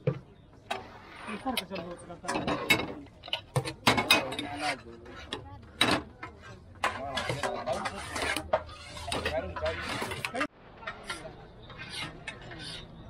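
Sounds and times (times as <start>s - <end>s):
men's voices talking: 1.3s - 5.4s, 6.7s - 12.7s.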